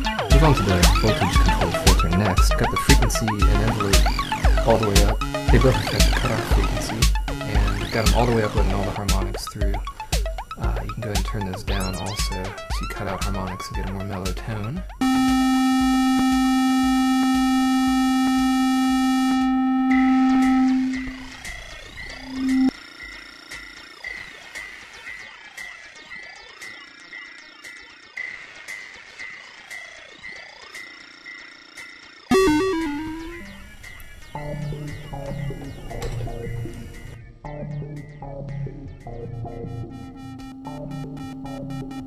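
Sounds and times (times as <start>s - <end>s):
low synthesizer notes: 0.0s - 9.3s, 15.0s - 22.7s, 32.3s - 33.8s
buzzy synthesizer note: 15.0s - 22.7s, 32.3s - 33.8s
synthesizer sweeps rising and falling: 15.0s - 22.7s, 32.3s - 33.8s.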